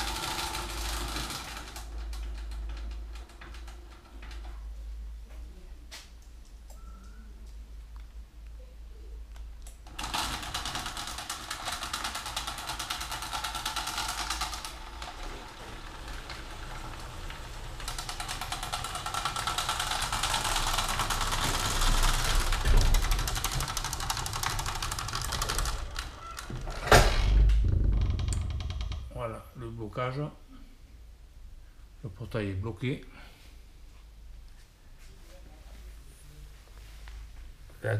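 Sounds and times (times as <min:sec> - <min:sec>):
garage door opener rattling: 0:00.0 - 0:04.8, 0:09.8 - 0:29.2
garage door closing thump: 0:20.6 - 0:29.1.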